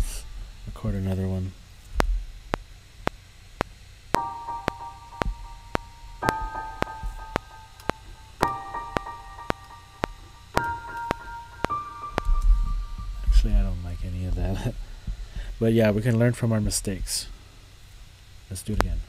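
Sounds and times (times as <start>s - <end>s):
piano playing sustained chords: 4.1s - 15.0s
metronome clicking: 4.2s - 13.5s
low rumble: 12.2s - 15.6s.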